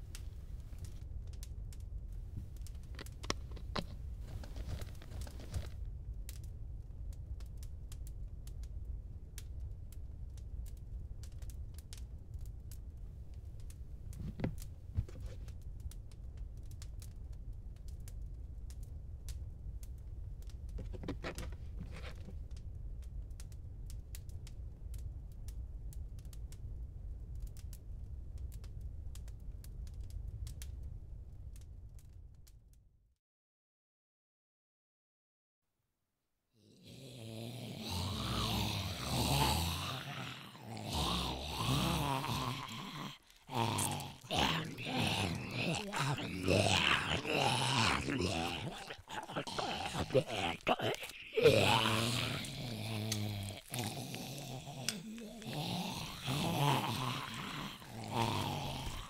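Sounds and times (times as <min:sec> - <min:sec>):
papers rustling and crinkling: 0:03.0 - 0:05.8.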